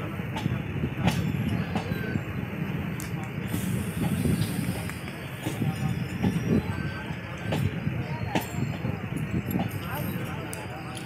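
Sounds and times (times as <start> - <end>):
train wheels rumbling on track: 0.0 - 11.0.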